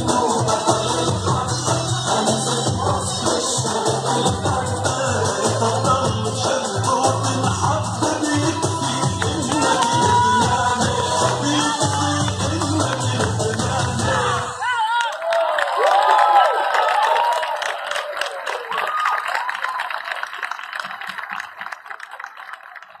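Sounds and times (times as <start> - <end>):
folk music with heavy bass beat: 0.0 - 14.5
audience applauding: 9.2 - 11.6, 14.7 - 23.0
audience cheering with whoops: 14.6 - 20.3.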